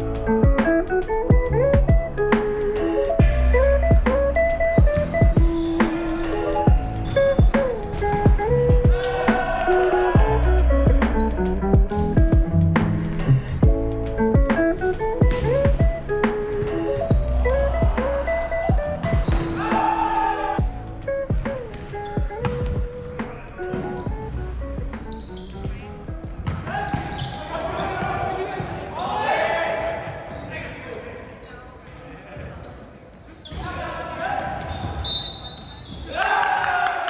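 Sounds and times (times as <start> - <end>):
background music: 0.0 - 26.8
players shouting: 8.4 - 11.5, 17.3 - 20.7, 26.6 - 31.2
volleyball hits: 18.7 - 20.4, 21.4 - 24.2.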